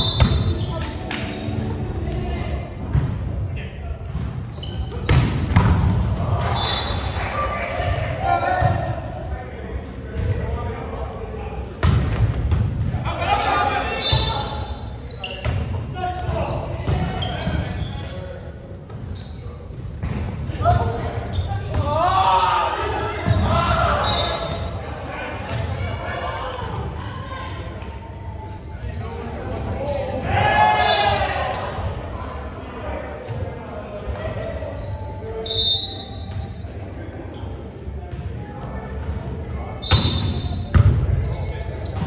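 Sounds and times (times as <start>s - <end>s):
players calling and shouting: 0.0s - 42.0s
volleyball strikes and bounces: 4.9s - 6.0s.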